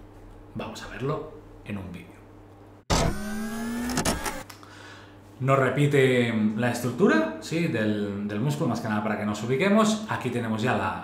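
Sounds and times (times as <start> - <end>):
rising electronic tone: 2.9 - 4.4.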